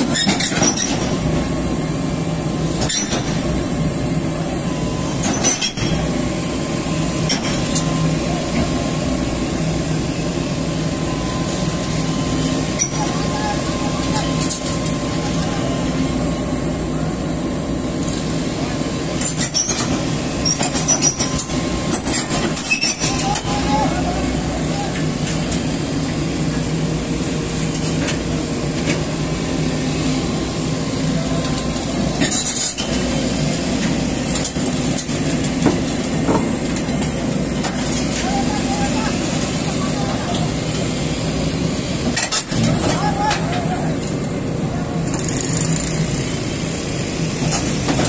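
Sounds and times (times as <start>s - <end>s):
excavator diesel engine running: 0.0s - 48.0s
high whine: 1.0s - 19.2s.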